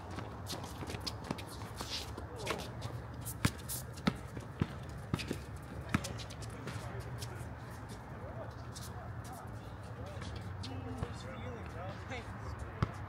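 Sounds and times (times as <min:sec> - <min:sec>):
running footsteps scuffing: 0:00.0 - 0:11.1
basketball bouncing on hard court: 0:03.4 - 0:06.8, 0:12.8 - 0:13.0.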